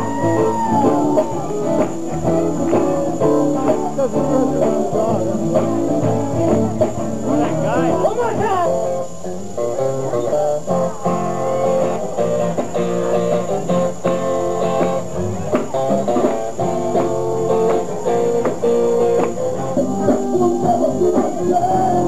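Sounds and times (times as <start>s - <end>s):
electric guitar: 0.0s - 22.0s
live band playing: 0.0s - 22.0s.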